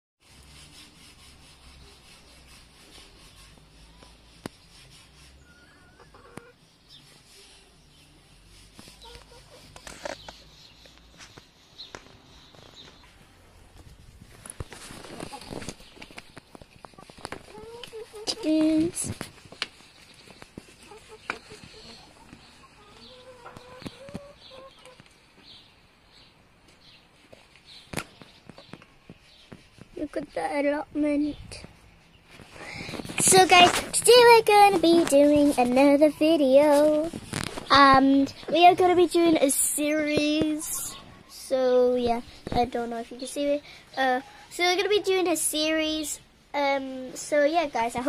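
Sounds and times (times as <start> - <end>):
chicken calling: 5.3 - 6.6, 20.8 - 25.0.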